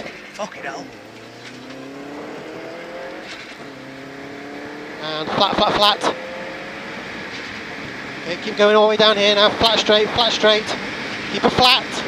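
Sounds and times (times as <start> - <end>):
rally car engine revving: 0.0 - 12.0.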